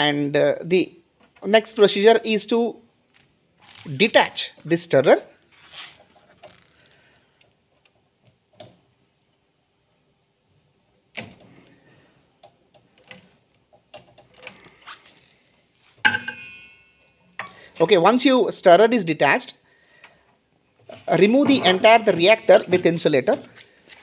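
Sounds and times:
small metallic clicks and knocks: 12.4 - 14.7
metal clink ringing: 16.1 - 17.4.

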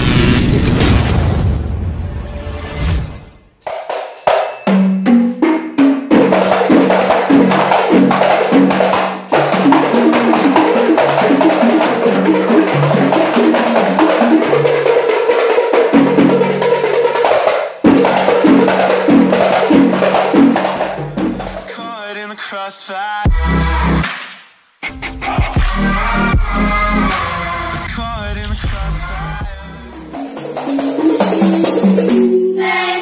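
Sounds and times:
frame drums and tambourines: 3.6 - 22.0, 29.8 - 33.0
melody line: 29.9 - 33.0.

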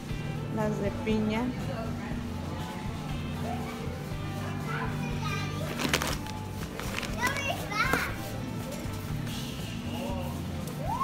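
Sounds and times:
children calling and chattering: 1.6 - 9.3.

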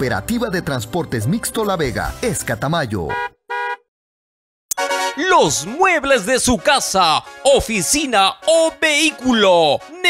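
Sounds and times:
car horn beeps: 3.1 - 3.9.

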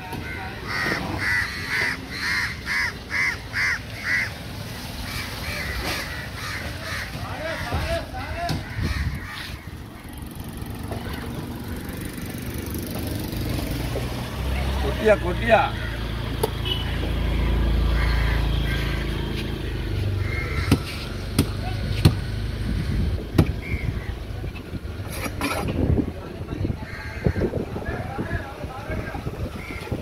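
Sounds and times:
bird calling: 0.1 - 11.4, 16.6 - 21.2, 22.2 - 24.3.

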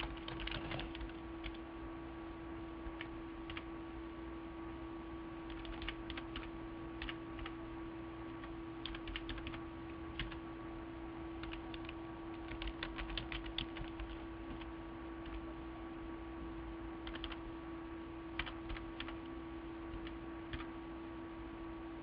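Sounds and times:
keyboard typing: 0.0 - 1.6, 2.9 - 3.7, 5.5 - 7.6, 8.4 - 10.4, 11.4 - 15.4, 17.0 - 17.4, 18.3 - 19.3, 19.9 - 20.7
steady low hum: 0.0 - 22.0.

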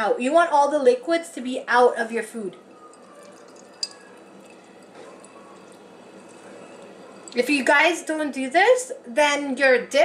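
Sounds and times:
juice dripping into bowl: 2.6 - 7.5.

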